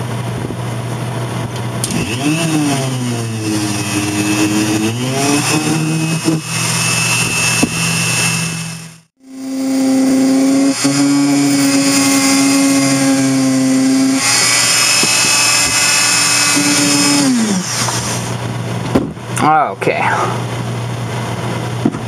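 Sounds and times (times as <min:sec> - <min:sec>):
rotary tool grinding metal: 0:01.8 - 0:18.4.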